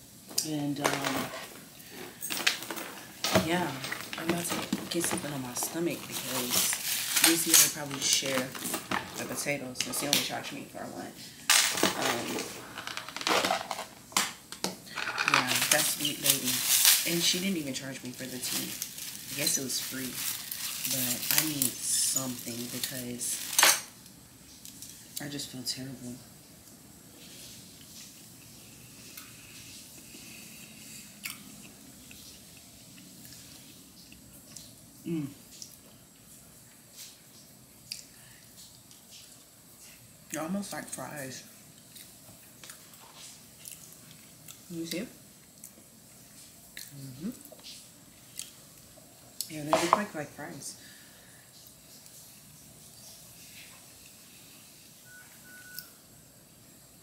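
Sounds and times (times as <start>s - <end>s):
low room hum: 0.0s - 57.0s
person chewing soft food: 35.4s - 40.2s, 41.7s - 44.7s, 45.4s - 49.5s
faint short beeps: 55.0s - 56.0s.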